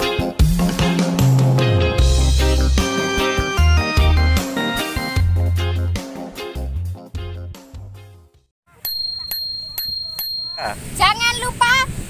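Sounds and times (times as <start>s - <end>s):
background music: 0.0s - 8.5s
bicycle bell ringing: 8.8s - 11.2s.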